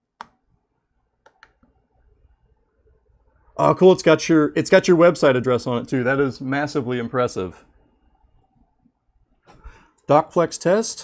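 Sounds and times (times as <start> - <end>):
faint clicks: 1.2 - 1.8.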